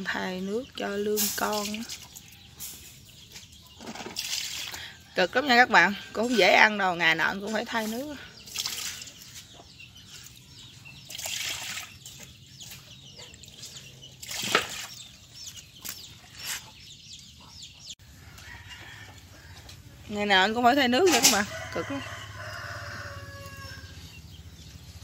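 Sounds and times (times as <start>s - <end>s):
water poured from dipper splashing: 4.2s - 4.8s, 8.5s - 9.1s, 11.1s - 12.0s, 14.2s - 15.0s.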